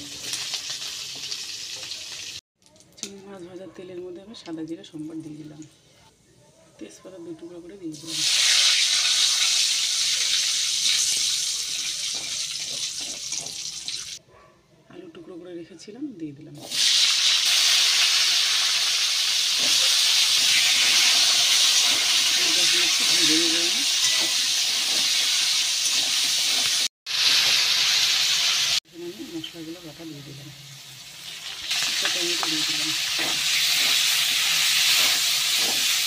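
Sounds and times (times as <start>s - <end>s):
oil sizzling in a wok: 0.0s - 2.4s, 7.9s - 14.2s, 16.6s - 36.0s.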